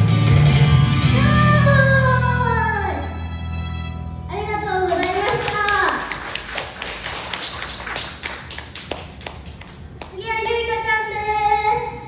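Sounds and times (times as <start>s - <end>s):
audience clapping: 4.8s - 10.6s.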